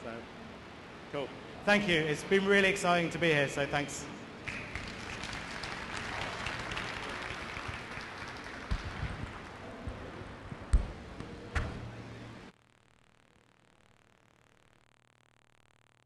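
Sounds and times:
audience applauding: 4.5s - 9.8s.

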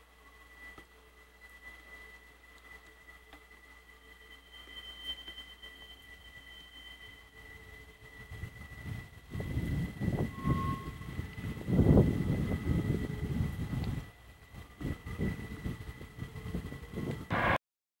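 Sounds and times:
freight train rumble: 0.0s - 17.6s.

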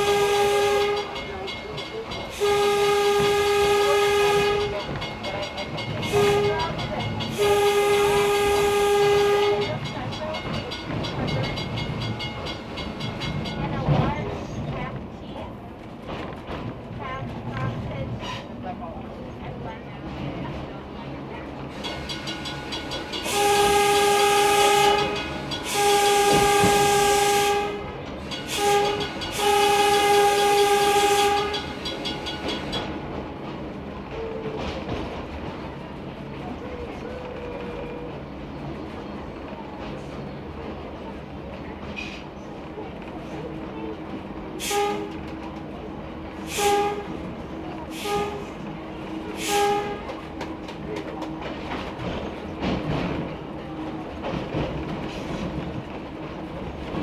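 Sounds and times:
railcar horn blasts: 0.0s - 11.9s, 21.7s - 32.9s, 44.6s - 45.4s, 46.4s - 50.4s
wheels rumbling on rails: 0.0s - 57.0s.

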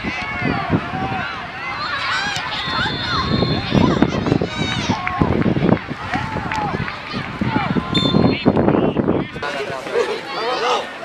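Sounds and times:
many voices shouting: 0.0s - 8.6s, 9.2s - 11.0s.

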